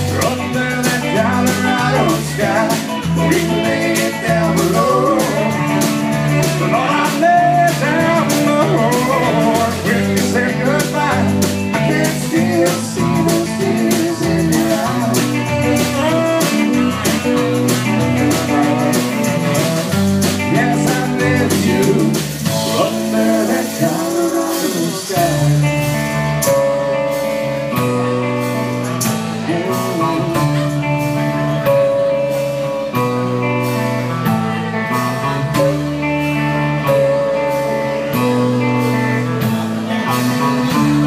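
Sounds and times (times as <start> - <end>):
live rock band playing: 0.0 - 41.0.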